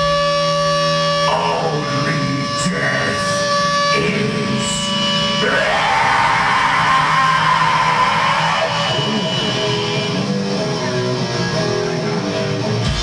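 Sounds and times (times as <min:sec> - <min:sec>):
distorted electric guitars: 0:00.0 - 0:13.0
harsh vocal shriek: 0:01.2 - 0:10.3.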